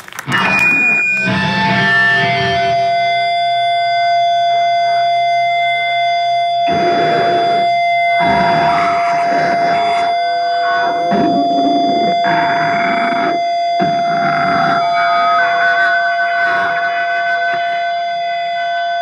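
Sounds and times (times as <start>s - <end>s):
electric guitar feedback ringing: 0.0s - 19.0s
distorted guitar and drums bursts: 0.3s - 3.4s.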